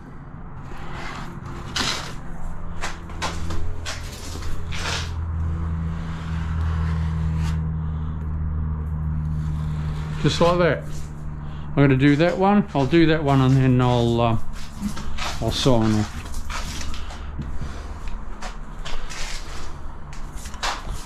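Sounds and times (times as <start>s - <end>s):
low engine drone: 0.0s - 21.0s
spatula scraping a wall: 0.6s - 8.1s, 9.1s - 21.0s.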